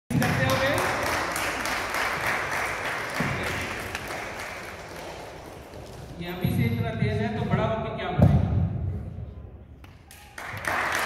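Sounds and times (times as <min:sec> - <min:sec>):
small group applauding: 0:00.1 - 0:06.2, 0:09.8 - 0:11.0.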